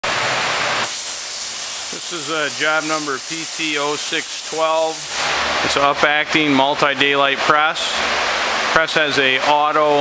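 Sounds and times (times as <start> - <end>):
steady rushing hiss: 0.1 - 10.0.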